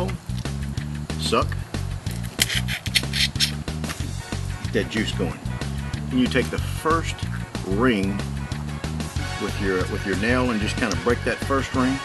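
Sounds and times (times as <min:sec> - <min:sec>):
guitar music: 0:00.0 - 0:12.0.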